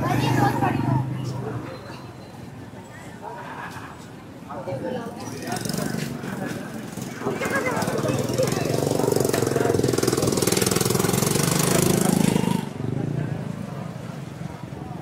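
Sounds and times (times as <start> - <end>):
street market voices: 0.0 - 15.0
small engine rattling: 6.9 - 12.6.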